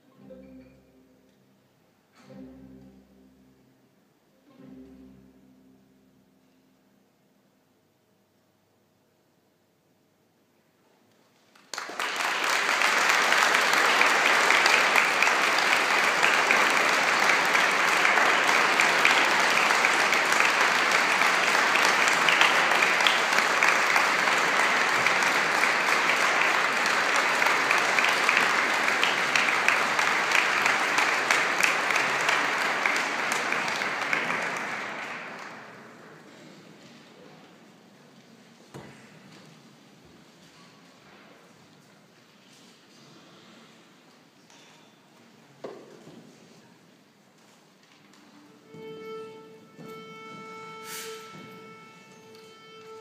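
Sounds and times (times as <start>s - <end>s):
audience applauding: 11.4s - 36.4s.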